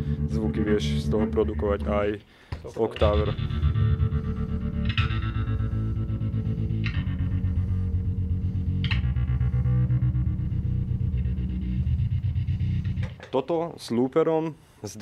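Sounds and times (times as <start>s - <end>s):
effected electric bass: 0.0s - 2.2s, 3.0s - 13.2s.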